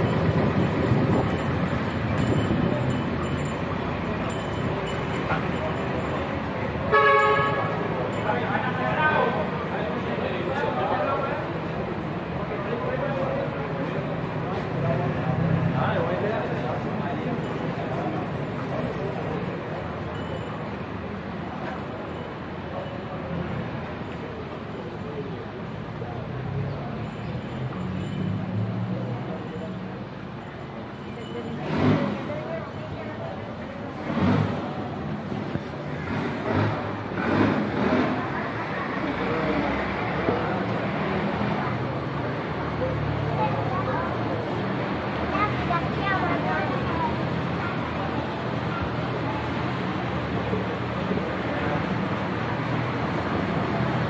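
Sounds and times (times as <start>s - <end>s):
city street noise: 0.0s - 54.0s
people talking: 0.0s - 54.0s
vehicles passing: 0.0s - 54.0s
voices: 0.0s - 54.0s
vehicle horn honk: 6.9s - 7.9s.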